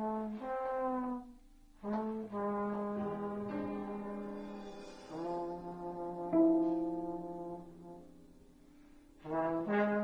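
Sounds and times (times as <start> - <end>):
trombone low sustained note: 0.0 - 10.0.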